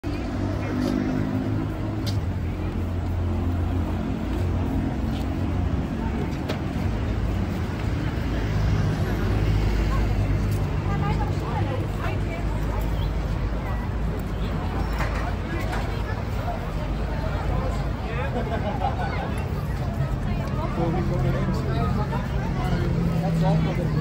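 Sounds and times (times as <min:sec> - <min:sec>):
crowd voices: 0:00.0 - 0:24.0
road traffic: 0:00.0 - 0:24.0.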